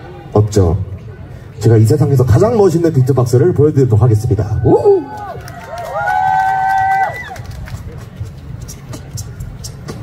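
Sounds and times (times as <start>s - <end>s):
crowd and stage noise: 0.0s - 10.0s.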